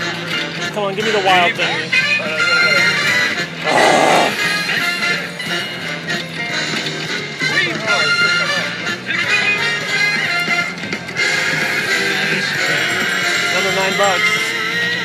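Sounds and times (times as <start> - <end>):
voices chattering: 3.5 - 4.4.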